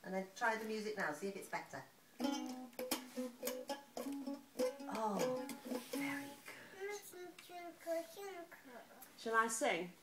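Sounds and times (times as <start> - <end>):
ukulele strummed unevenly: 2.2 - 6.4.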